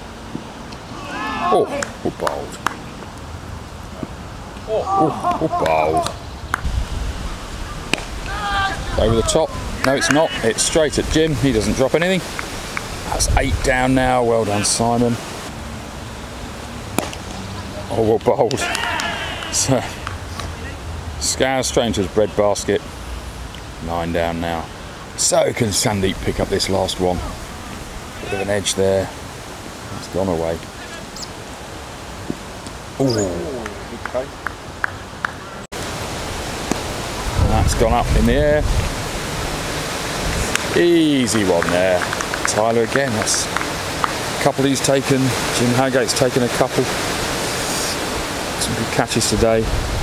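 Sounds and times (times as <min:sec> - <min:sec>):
outdoor background hiss: 0:00.0 - 0:50.0
steady rushing noise: 0:06.2 - 0:33.0, 0:33.7 - 0:50.0.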